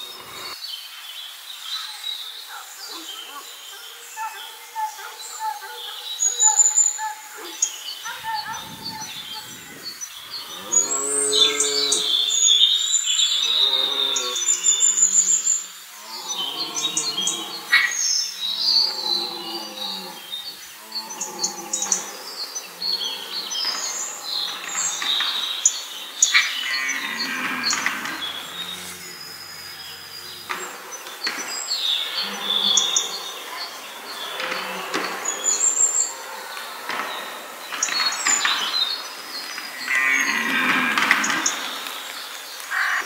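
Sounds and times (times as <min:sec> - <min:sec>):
small birds chirping: 0:00.0 - 0:43.0
deer stag roaring: 0:10.4 - 0:12.6, 0:13.3 - 0:14.6, 0:16.0 - 0:24.8, 0:26.5 - 0:30.8.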